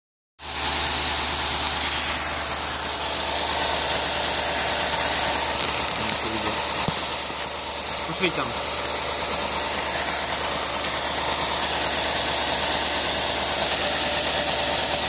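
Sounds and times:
car engine idling: 0:00.4 - 0:15.0.

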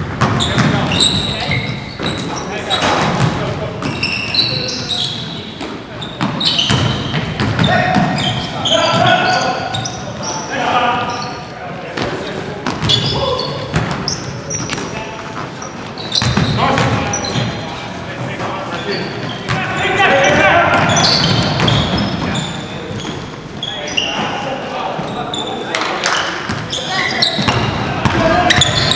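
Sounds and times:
sneaker squeaks: 0:00.0 - 0:28.9
players shouting: 0:07.6 - 0:11.3, 0:18.9 - 0:22.6.

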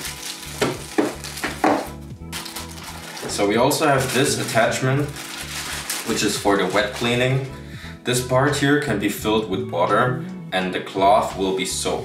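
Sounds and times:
plastic bags crinkling: 0:00.0 - 0:07.5.

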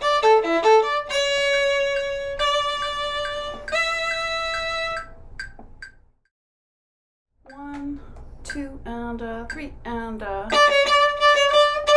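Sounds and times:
solo viola playing: 0:00.0 - 0:05.1, 0:10.5 - 0:11.9.

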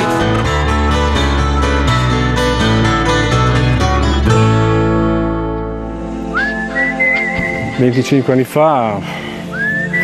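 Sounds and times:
acoustic guitar chord ringing: 0:00.0 - 0:09.3
whistled note: 0:06.3 - 0:07.8, 0:09.5 - 0:10.0.

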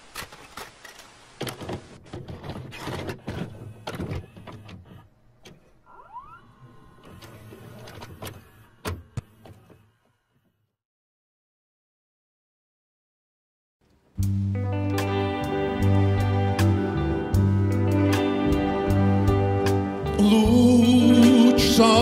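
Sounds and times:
tape mechanism clunks and clicks: 0:00.1 - 0:05.8, 0:07.0 - 0:09.9.

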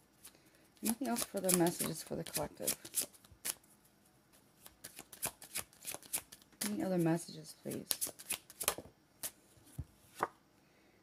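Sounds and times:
cards tapping: 0:00.8 - 0:03.0.

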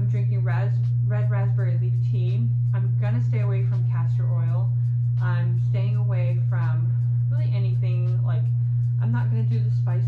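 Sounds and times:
loud steady low hum: 0:00.0 - 0:10.0
woman talking: 0:00.0 - 0:10.0.

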